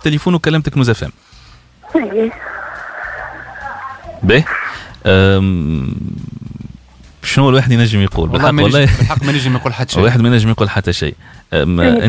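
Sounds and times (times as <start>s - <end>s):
breathy hiss on phone line: 1.1s - 6.7s.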